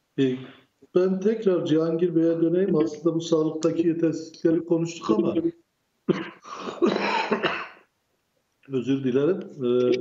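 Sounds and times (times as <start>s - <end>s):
man coughing: 6.1s - 7.9s.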